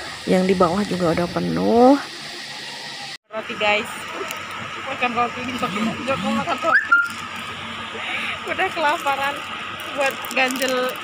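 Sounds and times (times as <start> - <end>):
voices and laughter: 5.5 - 7.2.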